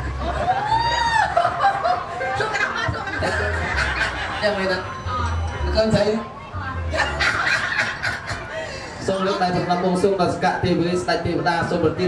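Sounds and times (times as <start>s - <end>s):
man laughing into microphone: 0.1s - 4.6s.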